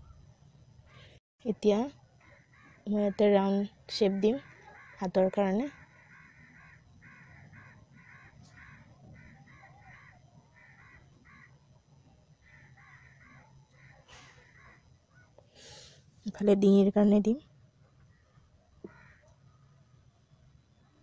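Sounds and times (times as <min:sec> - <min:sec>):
bird short harsh calls: 0:05.8 - 0:11.5, 0:12.4 - 0:15.3.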